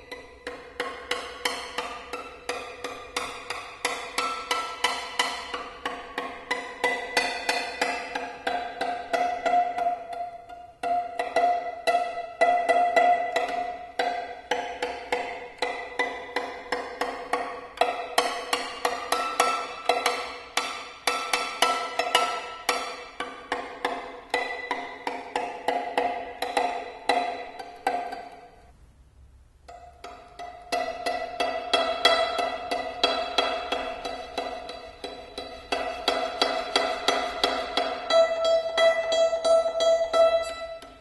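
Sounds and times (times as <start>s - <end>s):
violin strings struck with paper tube: 0.0s - 41.0s.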